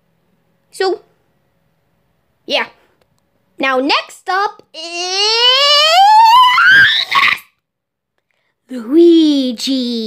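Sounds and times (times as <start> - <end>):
young person's voice rising to a squeal: 4.8 - 7.6.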